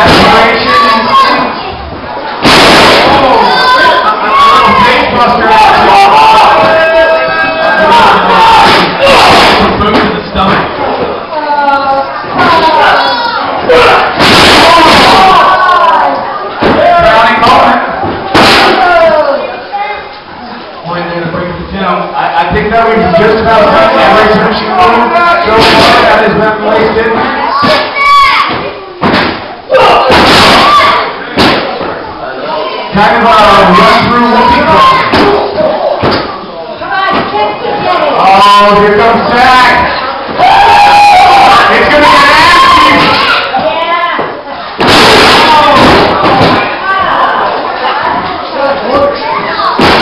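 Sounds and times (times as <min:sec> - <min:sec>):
crowd noise: 0:00.0 - 0:50.0
people shouting and yelling: 0:00.0 - 0:50.0
voices: 0:00.0 - 0:50.0
bodies slamming on wrestling ring: 0:02.4 - 0:03.3, 0:14.1 - 0:15.2, 0:44.8 - 0:46.7, 0:49.8 - 0:50.0.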